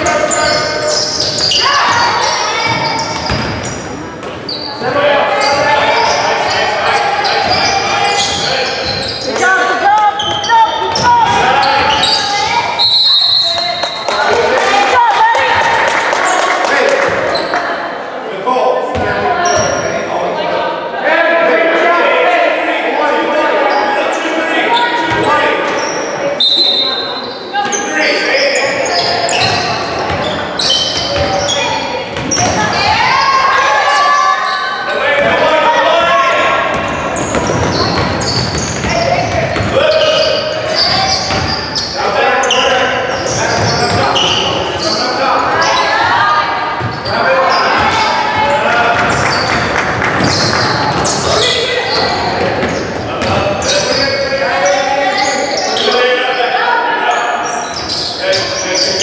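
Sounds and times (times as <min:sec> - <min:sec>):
people calling out: 0:00.0 - 0:03.8, 0:04.5 - 0:16.6, 0:19.1 - 0:59.0
basketball bouncing on wooden floor: 0:02.7 - 0:04.4, 0:36.7 - 0:39.8.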